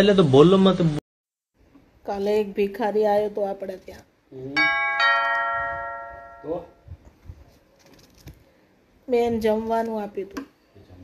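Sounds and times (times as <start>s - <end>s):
two-note doorbell chime: 4.6s - 6.8s.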